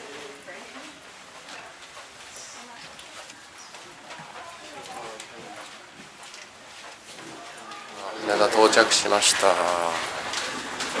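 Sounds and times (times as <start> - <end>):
footsteps of people walking: 0.0 - 11.0
passengers talking: 0.0 - 11.0.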